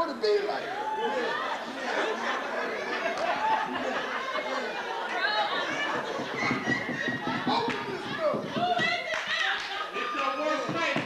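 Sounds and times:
several voices talking: 0.0 - 11.0.

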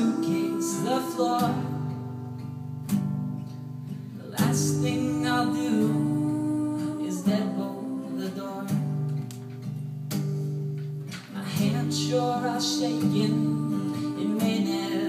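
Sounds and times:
woman singing: 0.0 - 2.5, 4.2 - 9.2, 11.3 - 15.0
acoustic guitars strumming: 0.0 - 15.0.

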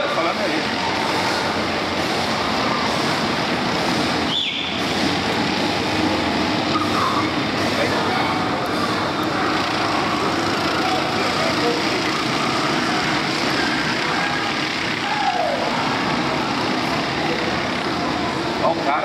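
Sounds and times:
kart engine slowing down: 0.0 - 19.0
kart engines buzzing at high revs: 0.0 - 19.0.

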